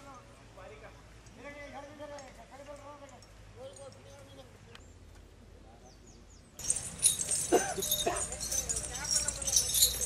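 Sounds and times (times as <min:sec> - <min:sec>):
metal chains clinking: 0:06.6 - 0:10.0.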